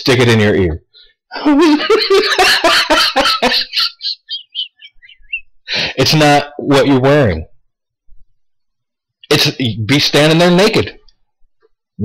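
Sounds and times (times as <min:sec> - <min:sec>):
man laughing with squeaky giggles: 0:01.3 - 0:05.8.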